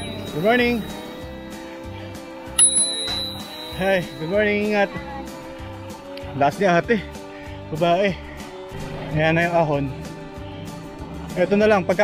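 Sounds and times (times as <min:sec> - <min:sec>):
bicycle bell ding: 0:00.0 - 0:01.4, 0:02.6 - 0:04.8
background music with steady beat: 0:00.0 - 0:12.0.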